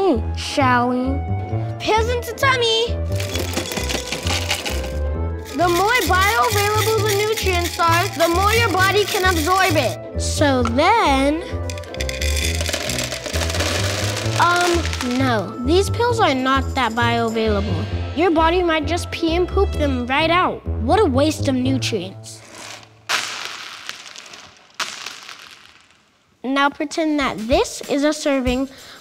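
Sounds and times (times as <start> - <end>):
jelly beans clattering onto wood: 3.1 - 10.0, 11.5 - 15.4, 22.4 - 26.1.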